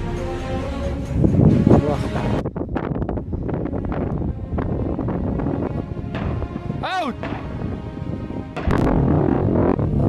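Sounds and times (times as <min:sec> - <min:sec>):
wind blowing on microphone: 0:00.9 - 0:10.0.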